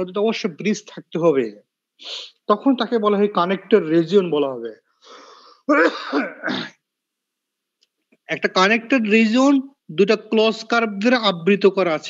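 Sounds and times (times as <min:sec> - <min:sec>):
man clearing his throat: 0:05.7 - 0:06.8.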